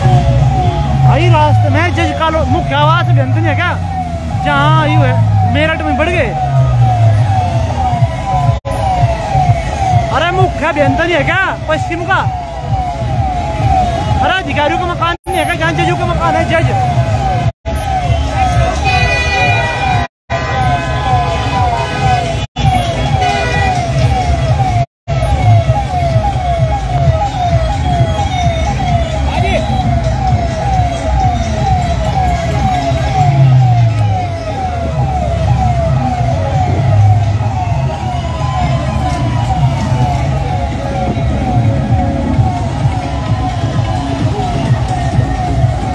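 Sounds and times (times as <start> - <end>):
rising-and-falling siren tone: 0.0 - 15.1, 15.7 - 45.9.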